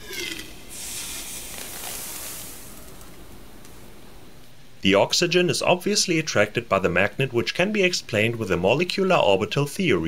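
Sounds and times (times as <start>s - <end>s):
liquid oxygen boiling hiss: 0.0s - 4.0s.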